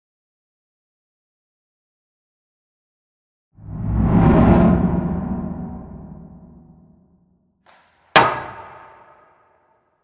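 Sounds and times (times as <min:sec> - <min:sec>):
metallic clang ringing: 0:08.2 - 0:09.2.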